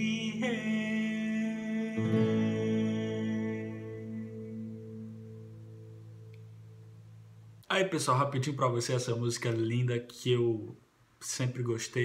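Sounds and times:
man singing: 0:00.0 - 0:04.7
acoustic guitar chords ringing: 0:00.0 - 0:07.6.

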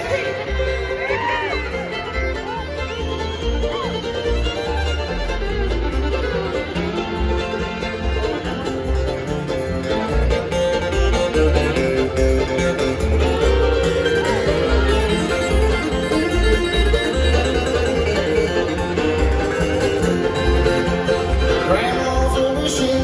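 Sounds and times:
acoustic guitar: 0:00.0 - 0:23.0
banjo: 0:00.0 - 0:23.0
fiddle: 0:00.0 - 0:23.0
mandolin: 0:00.0 - 0:23.0
upright bass notes: 0:00.0 - 0:23.0.

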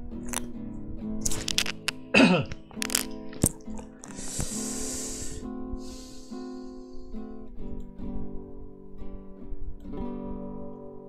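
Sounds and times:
background music sustained notes: 0:00.0 - 0:11.0
person coughing: 0:02.1 - 0:02.6.

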